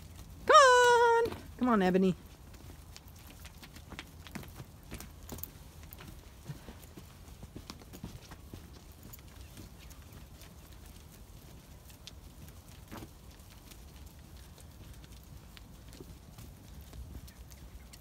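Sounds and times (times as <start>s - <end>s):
sheep hooves on stony track: 0.0s - 18.0s.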